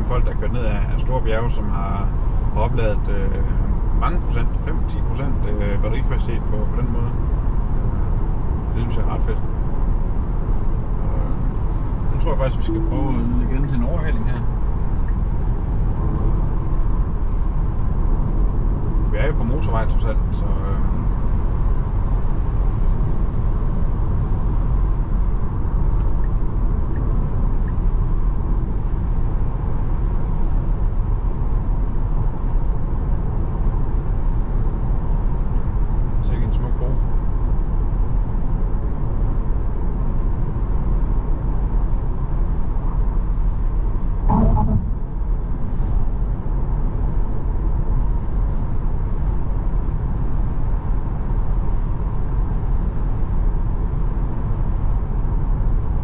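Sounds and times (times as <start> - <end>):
car tyre and wind noise: 7.0 - 19.2, 20.9 - 36.2, 37.0 - 56.0
short pitched sound: 12.4 - 14.4, 44.3 - 45.4.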